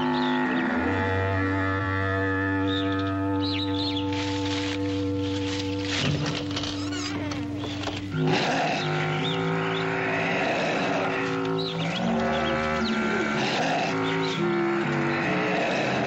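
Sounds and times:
high animal cries: 0:00.0 - 0:16.0
low droning film score: 0:00.0 - 0:16.0.

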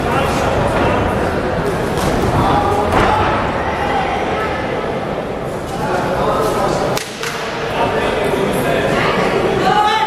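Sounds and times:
spectators calling and talking: 0:00.0 - 0:10.0.

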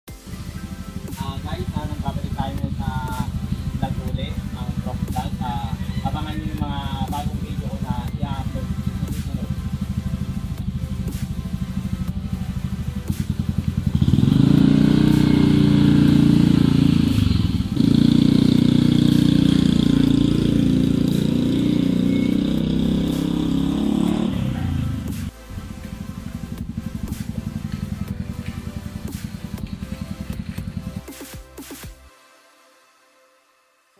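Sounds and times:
background music: 0:00.0 - 0:33.9
motor scooter engine running: 0:00.2 - 0:31.2.

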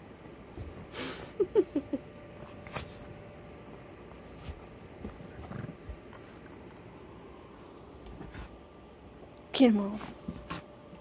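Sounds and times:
dogs scuffling on cushions: 0:04.1 - 0:08.5.

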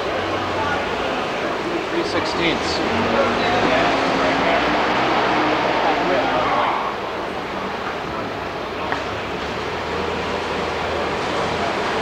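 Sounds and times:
indistinct voices talking: 0:00.0 - 0:09.2
dense room noise: 0:00.0 - 0:12.0.

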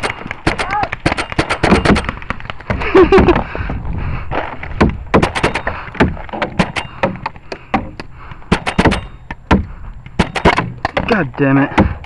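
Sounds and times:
paintball markers firing pops: 0:00.0 - 0:02.8, 0:04.8 - 0:11.2.

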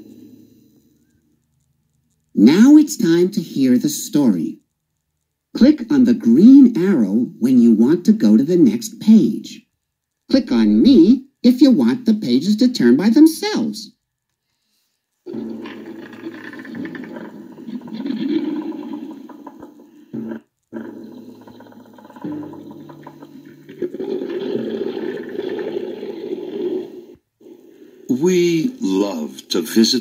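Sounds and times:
animal roaring and growling: 0:15.3 - 0:28.1.

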